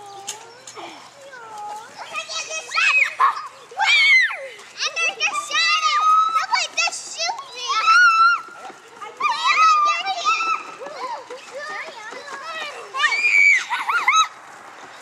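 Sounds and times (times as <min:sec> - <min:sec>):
children shouting as they play: 0:01.8 - 0:14.4.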